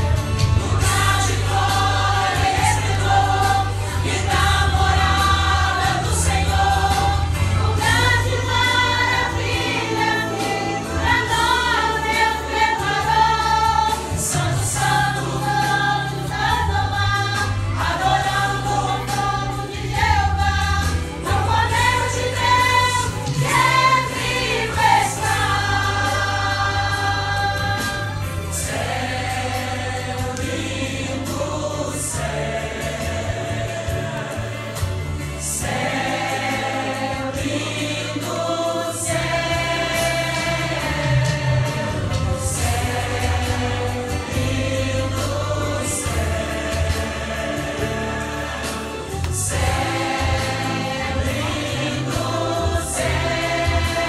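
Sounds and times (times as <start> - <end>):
choir singing a hymn: 0.0 - 54.0.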